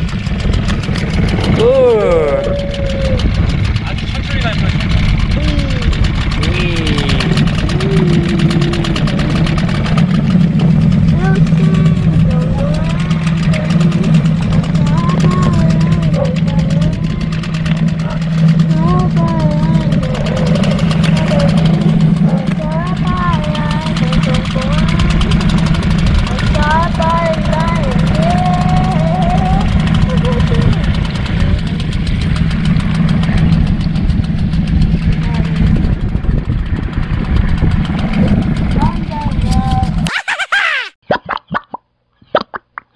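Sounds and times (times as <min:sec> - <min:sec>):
outboard motor running: 0:00.0 - 0:40.1.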